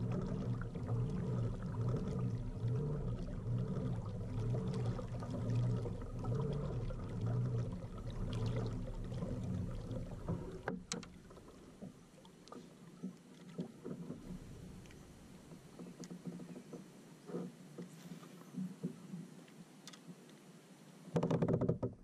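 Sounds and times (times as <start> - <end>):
propeller drive whirring: 0.0 - 11.3
water washing along hull: 0.0 - 20.3.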